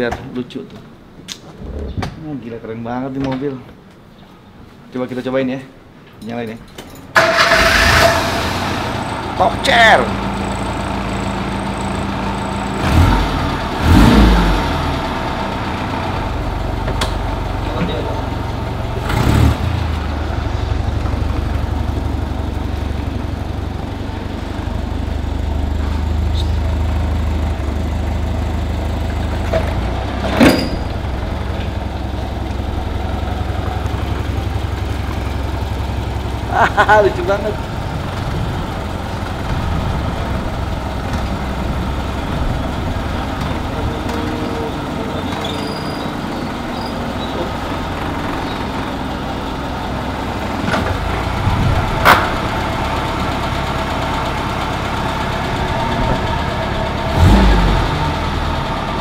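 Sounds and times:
small car engine running: 7.2 - 59.0.

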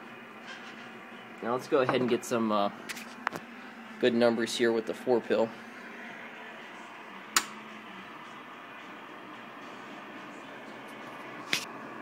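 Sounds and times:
cooling fans whirring: 0.0 - 12.0.

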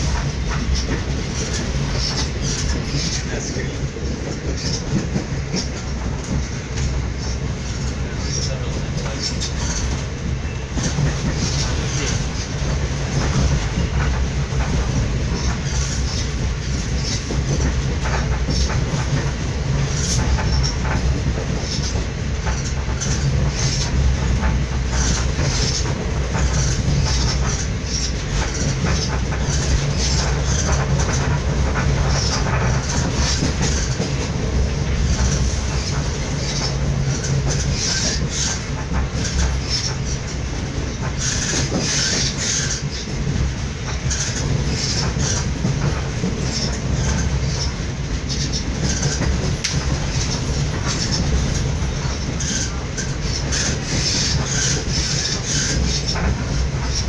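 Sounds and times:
train running rumble: 0.0 - 57.0
wheels and carriage clattering: 44.0 - 57.0.

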